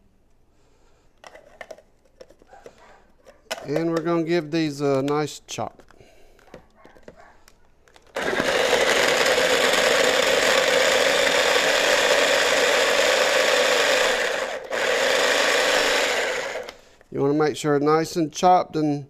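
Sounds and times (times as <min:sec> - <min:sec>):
electric food chopper running: 0:08.1 - 0:16.8.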